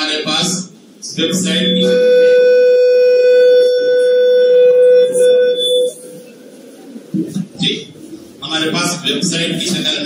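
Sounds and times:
microphone feedback howl: 0:01.2 - 0:06.6.

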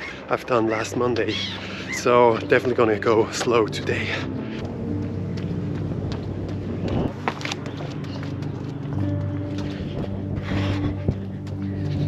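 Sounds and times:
wind rumbling on microphone: 0:05.4 - 0:07.2.

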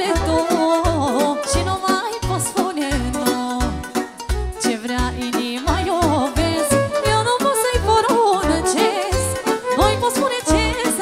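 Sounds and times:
live band with bass beat: 0:00.0 - 0:11.0
woman singing into a microphone: 0:00.0 - 0:11.0.

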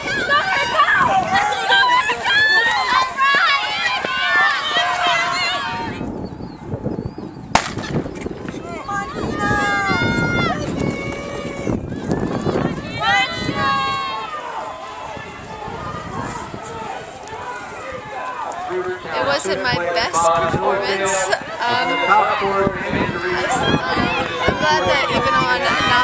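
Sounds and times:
spectators yelling and cheering: 0:00.0 - 0:06.2, 0:08.5 - 0:26.0
starter's pistol firing: 0:07.6 - 0:08.0.

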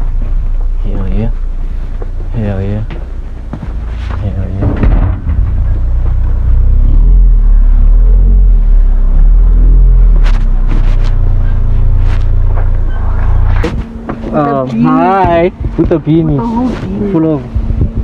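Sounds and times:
wind buffeting microphone: 0:15.2 - 0:18.0.

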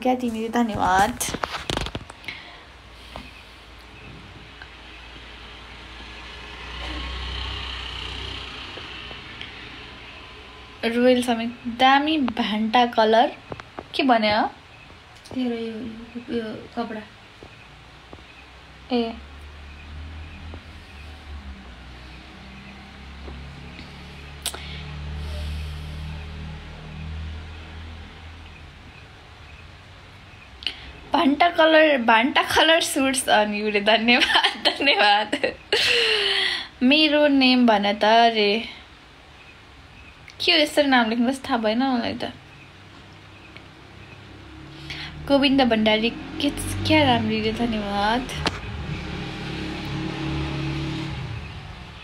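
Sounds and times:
passing motor vehicle rumble: 0:00.0 - 0:52.0.

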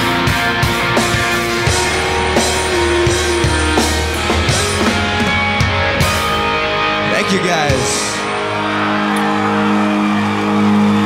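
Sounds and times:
rock band holding a sustained chord: 0:00.0 - 0:11.0
crowd noise: 0:00.1 - 0:11.0.

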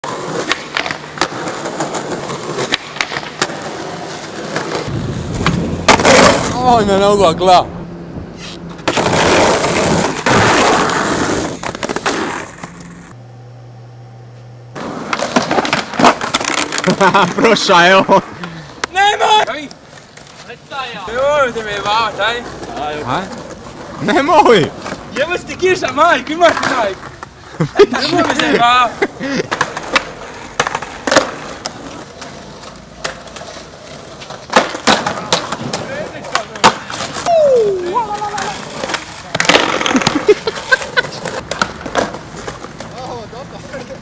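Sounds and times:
skateboard clacking on concrete: 0:00.0 - 0:06.5, 0:14.8 - 0:17.4, 0:18.8 - 0:27.4, 0:29.5 - 0:44.0
skateboard wheels rolling on concrete: 0:00.0 - 0:13.4, 0:14.0 - 0:44.0
young men chattering: 0:17.1 - 0:19.8, 0:20.4 - 0:29.6, 0:35.7 - 0:37.1, 0:42.9 - 0:44.0
young man shouting: 0:18.9 - 0:19.7, 0:37.2 - 0:38.7.

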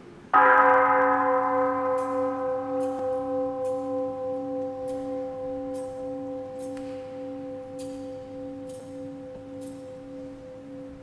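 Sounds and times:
altar bell ringing: 0:00.4 - 0:11.0.

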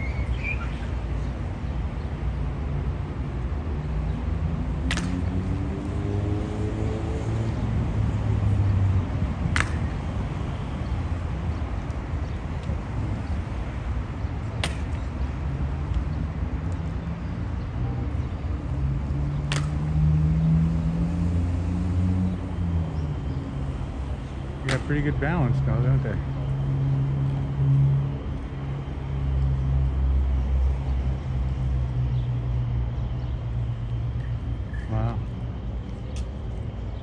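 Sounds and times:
city traffic rumble: 0:00.0 - 0:37.0
vehicle engines pulling away: 0:04.4 - 0:09.9, 0:18.6 - 0:29.8.

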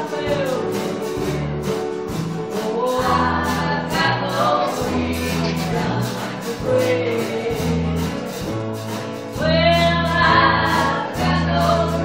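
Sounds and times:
steady drum beat: 0:00.0 - 0:12.0
sustained bass notes: 0:00.0 - 0:12.0
person singing: 0:02.5 - 0:08.2.

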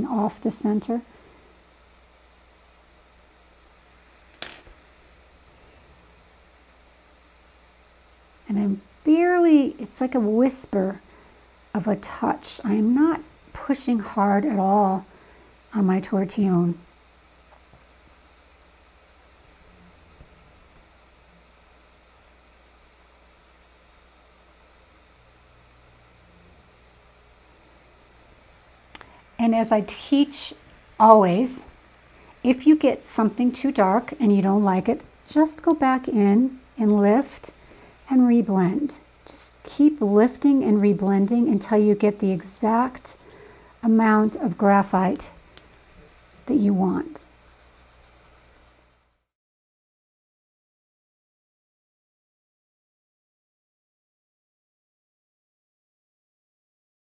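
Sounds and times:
paper tortillon rubbing on paper: 0:06.6 - 0:08.5, 0:17.4 - 0:20.8, 0:21.4 - 0:25.1, 0:47.1 - 0:49.3.

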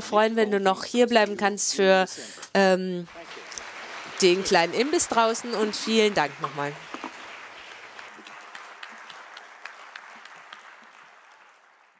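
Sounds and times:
audience applause: 0:03.1 - 0:11.9.

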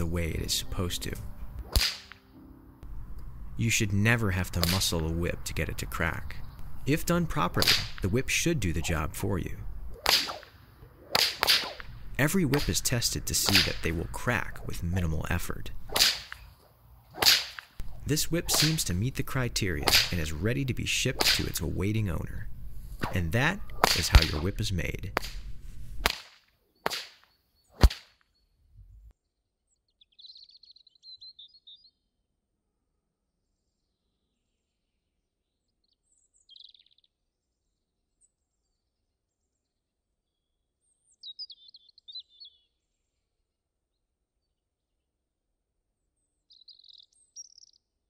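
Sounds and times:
whip cracking: 0:01.6 - 0:02.3, 0:04.6 - 0:05.0, 0:07.6 - 0:08.1, 0:09.9 - 0:14.7, 0:15.8 - 0:16.5, 0:17.1 - 0:20.4, 0:21.2 - 0:21.6, 0:23.0 - 0:28.2.

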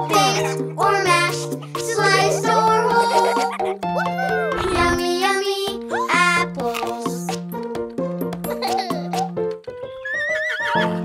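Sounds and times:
children's song music: 0:00.0 - 0:11.0
cartoon horse whinnying: 0:03.2 - 0:05.0, 0:10.0 - 0:11.0.

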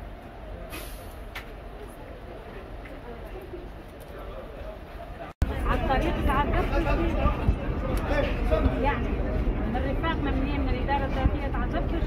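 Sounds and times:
steady low rumble: 0:05.4 - 0:12.0.

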